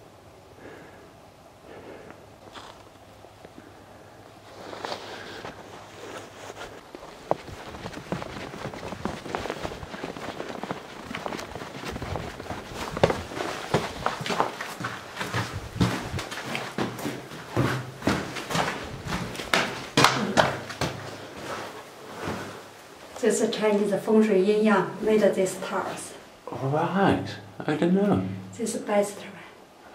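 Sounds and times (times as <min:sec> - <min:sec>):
footsteps on snowy paving: 0:02.4 - 0:02.9, 0:04.4 - 0:22.7.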